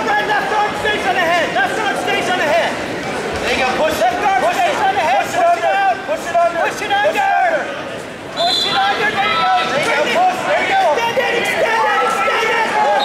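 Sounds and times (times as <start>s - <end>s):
crowd shouting and talking: 0.0s - 13.0s.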